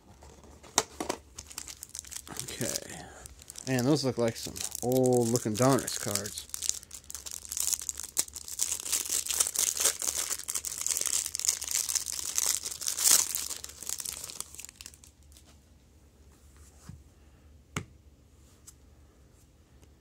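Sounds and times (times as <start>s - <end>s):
plastic wrapper crinkling and tearing: 1.3s - 15.4s.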